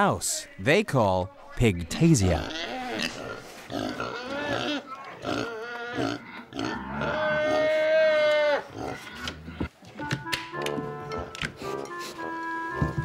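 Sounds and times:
pigs squealing: 0:02.2 - 0:09.4.

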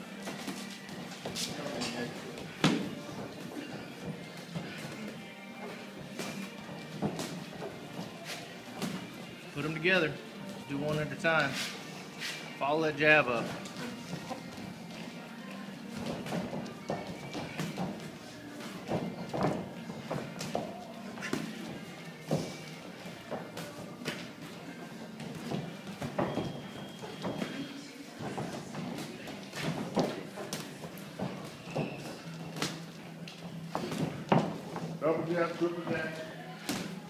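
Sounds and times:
background music: 0:00.0 - 0:37.0
shuffling footwork on canvas: 0:00.2 - 0:09.4
boxing gloves thudding: 0:02.4 - 0:05.2, 0:15.9 - 0:34.8.

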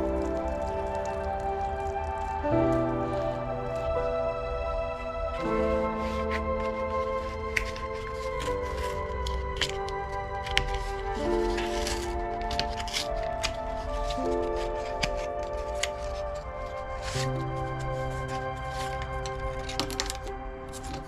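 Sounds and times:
cardboard package clicks and rustles: 0:00.0 - 0:03.9, 0:05.3 - 0:21.0
slow held chords music: 0:00.0 - 0:21.0.

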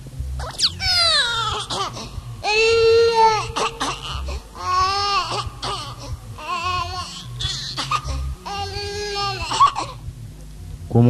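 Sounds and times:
low bass pattern: 0:00.0 - 0:11.0
baby crying: 0:00.4 - 0:10.0.

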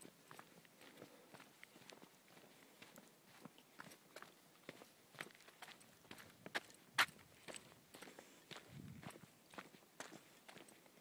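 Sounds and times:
footsteps on stony path: 0:00.0 - 0:11.0.

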